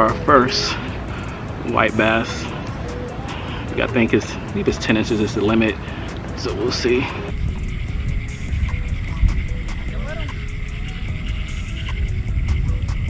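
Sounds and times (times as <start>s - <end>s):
faint background music: 0.0s - 13.0s
wind buffeting microphone: 0.0s - 13.0s.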